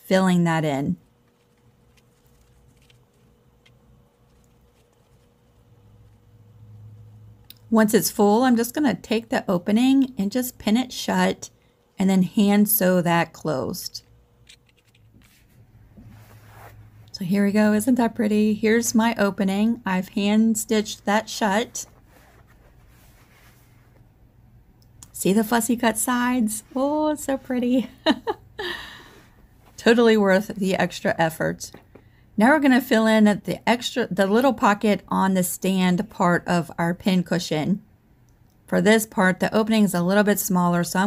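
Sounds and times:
faint steady hum: 0.0 - 41.0
pin cushion rustling: 1.2 - 6.2.

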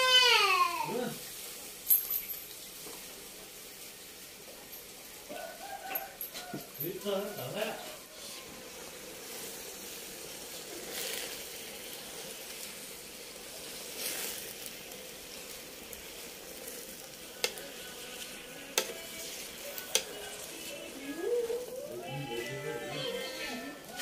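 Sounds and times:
greens sizzling in a pot: 0.0 - 24.0.

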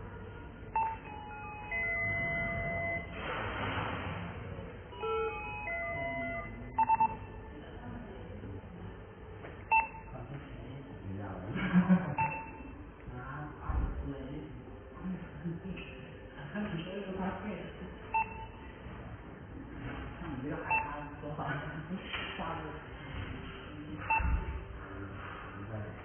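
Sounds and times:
intercom chime of held notes: 0.7 - 3.2, 4.9 - 7.3.

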